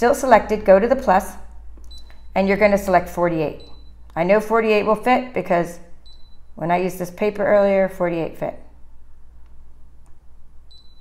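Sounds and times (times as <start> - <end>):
low steady hum: 0.0 - 11.0
stylus tapping touchscreen: 1.7 - 2.4.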